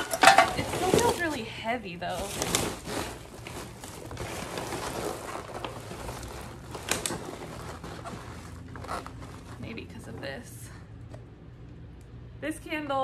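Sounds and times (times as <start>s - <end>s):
plastic trash bag rustling: 0.0s - 10.5s.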